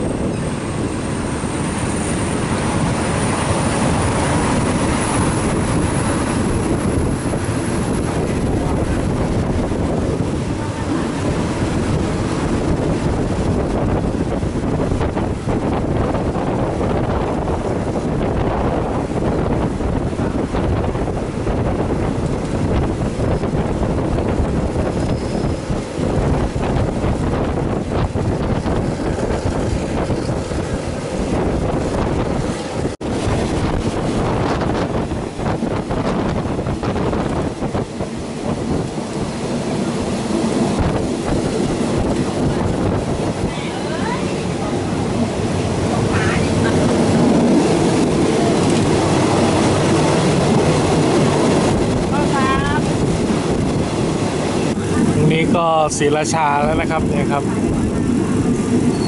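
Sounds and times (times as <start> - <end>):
train wheels rumbling on rails: 0.0 - 59.0
wind buffeting microphone: 0.0 - 59.0.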